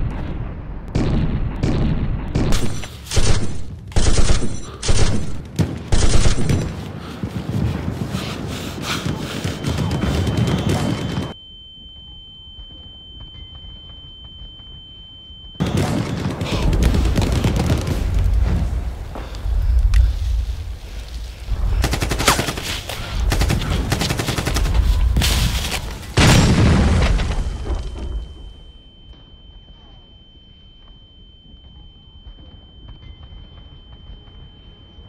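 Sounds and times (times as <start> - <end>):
gunfire and explosions: 0.0 - 11.4, 12.7 - 29.0
high-pitched ringing tone: 9.7 - 15.6, 27.4 - 35.0
explosion boom: 24.7 - 28.3.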